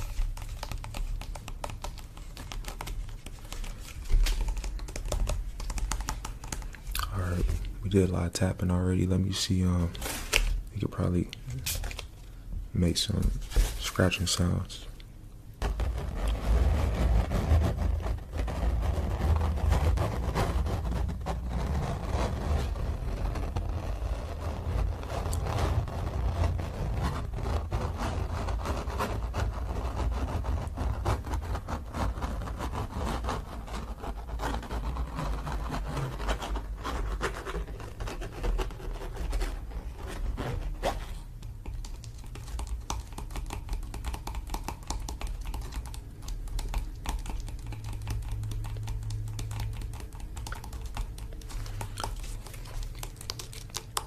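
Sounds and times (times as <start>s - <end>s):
fingernails scratching canvas: 0.0s - 12.1s, 15.6s - 54.0s.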